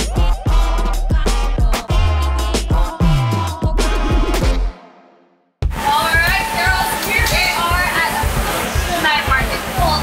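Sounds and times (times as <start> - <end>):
background music with low beat: 0.0 - 10.0
women talking: 5.8 - 10.0.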